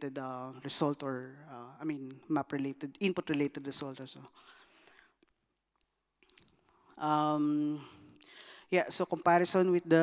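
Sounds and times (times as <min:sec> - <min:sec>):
faint breath: 0:04.4 - 0:05.2, 0:07.9 - 0:08.7.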